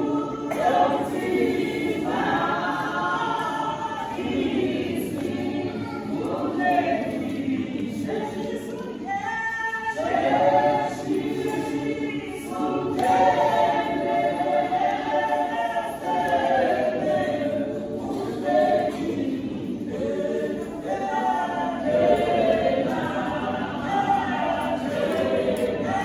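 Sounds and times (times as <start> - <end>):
women's choir singing a hymn: 0.0 - 26.0.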